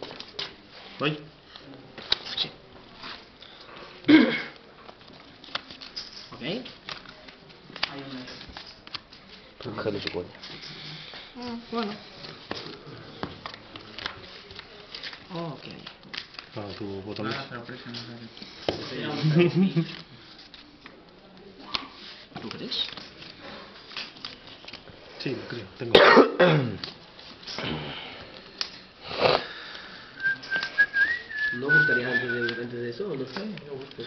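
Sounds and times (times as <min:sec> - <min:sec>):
cards shuffled on a table: 0:00.0 - 0:04.1, 0:04.8 - 0:25.8, 0:32.3 - 0:34.0
low room noise: 0:00.0 - 0:34.0
person sniffing: 0:29.0 - 0:30.2.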